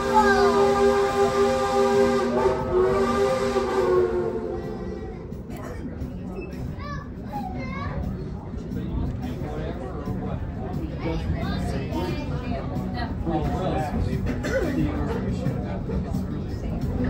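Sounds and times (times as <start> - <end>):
children's voices: 0.0 - 1.2, 4.6 - 8.6
steady tones together: 0.0 - 6.8
train running rumble: 0.0 - 17.0.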